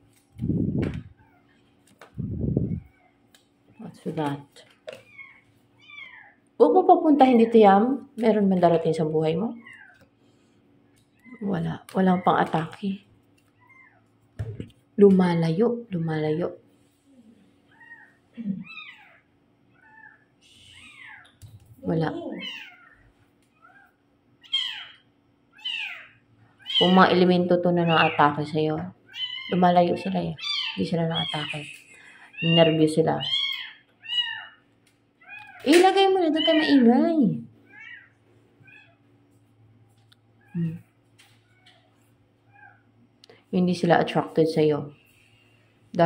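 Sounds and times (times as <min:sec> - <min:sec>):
animal high-pitched calls: 0:05.0 - 0:06.4, 0:17.2 - 0:21.4, 0:22.0 - 0:27.2, 0:27.8 - 0:28.4, 0:29.0 - 0:34.6.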